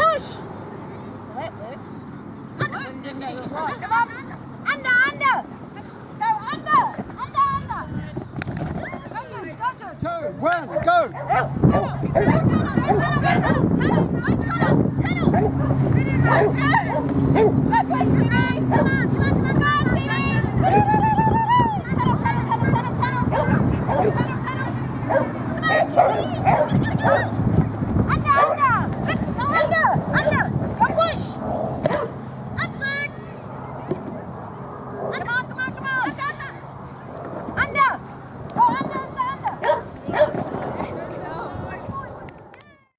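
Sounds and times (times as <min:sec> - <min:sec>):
dogs barking excitedly: 0:10.0 - 0:19.2, 0:22.5 - 0:32.4, 0:38.6 - 0:40.9
raised human voices: 0:10.2 - 0:27.4.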